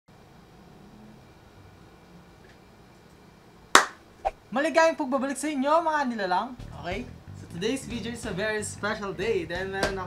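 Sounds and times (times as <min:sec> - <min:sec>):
hand snap: 0:03.7 - 0:04.0, 0:09.8 - 0:10.0.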